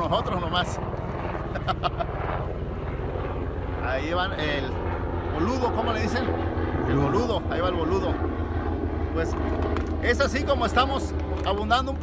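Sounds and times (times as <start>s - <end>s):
helicopter rotor rumble: 0.0s - 12.0s.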